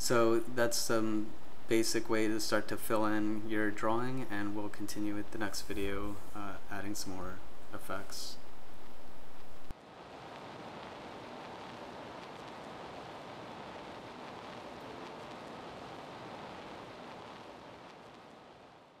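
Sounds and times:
steady background hiss: 0:00.0 - 0:19.0.

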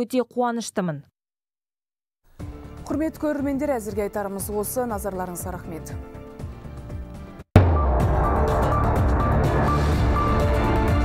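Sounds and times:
electronic theme music with heavy bass: 0:06.2 - 0:11.0.

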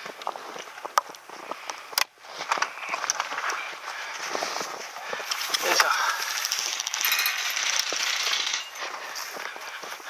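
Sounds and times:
dry grass and brush rustling: 0:00.0 - 0:10.0.

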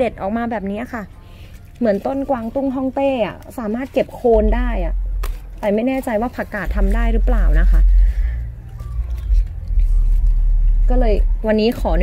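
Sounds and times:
low steady rumble: 0:02.2 - 0:12.0
leaf stalk clicks and rustles: 0:08.7 - 0:10.8.

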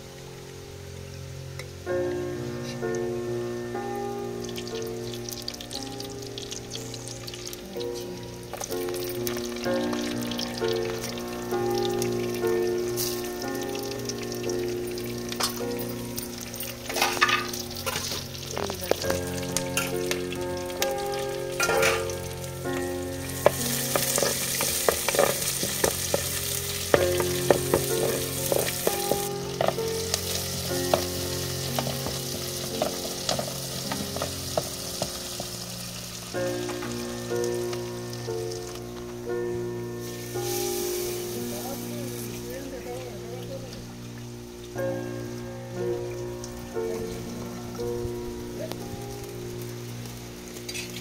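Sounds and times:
food sizzling in hot oil: 0:00.0 - 0:51.0
melody: 0:00.0 - 0:51.0
wooden spatula scraping a pot: 0:23.4 - 0:35.6.

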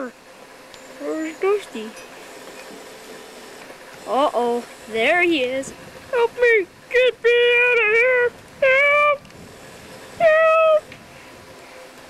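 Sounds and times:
child wailing: 0:07.5 - 0:09.2, 0:10.2 - 0:10.9.

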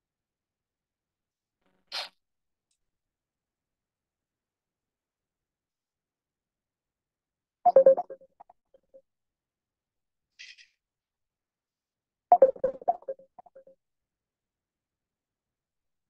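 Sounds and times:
electronic jingle: 0:07.7 - 0:08.2.

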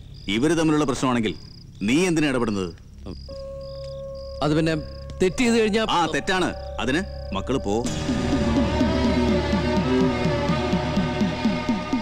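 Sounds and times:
crickets chirping: 0:00.0 - 0:10.2.

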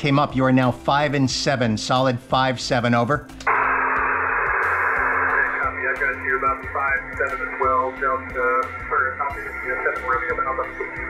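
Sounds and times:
radio receiver hiss: 0:03.4 - 0:11.0
steady low hum: 0:03.5 - 0:11.0
thin voice over radio: 0:05.0 - 0:11.0.

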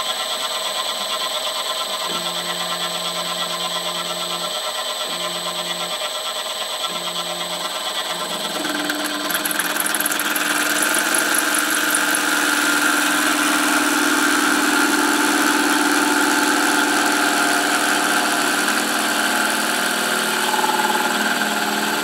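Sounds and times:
router spindle motor hum: 0:00.0 - 0:22.0.

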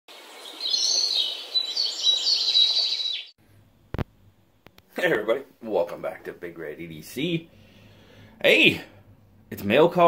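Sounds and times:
bird chirping: 0:00.1 - 0:03.4.

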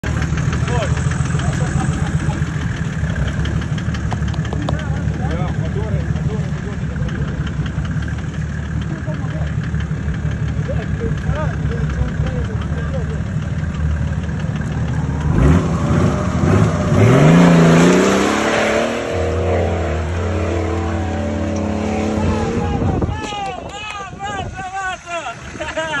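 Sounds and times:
diesel engine revving under load: 0:00.0 - 0:23.2.

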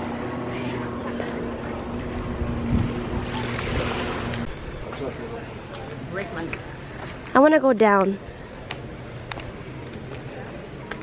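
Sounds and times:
low motor hum: 0:00.0 - 0:07.4
water noise: 0:00.0 - 0:11.0
wind: 0:00.0 - 0:11.0.

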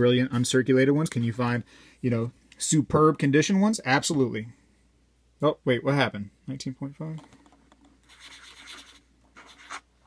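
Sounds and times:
marker writing on paper: 0:08.0 - 0:09.9.

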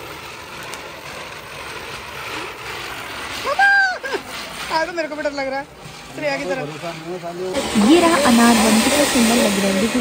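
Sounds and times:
firework fountain hissing: 0:00.0 - 0:10.0.

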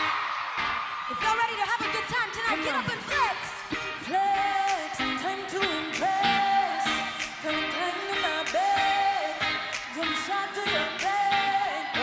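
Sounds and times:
female vocal group singing: 0:02.7 - 0:12.0.

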